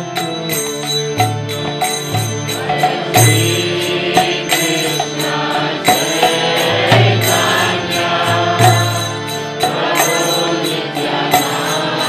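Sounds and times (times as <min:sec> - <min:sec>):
hand cymbals striking: 0:00.0 - 0:12.0
harmonium chords: 0:00.0 - 0:12.0
chanted mantra: 0:02.5 - 0:12.0.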